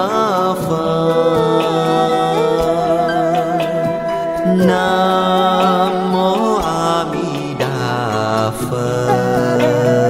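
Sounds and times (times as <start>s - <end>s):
instrumental music: 0.0s - 10.0s
melodic devotional chanting: 0.0s - 10.0s.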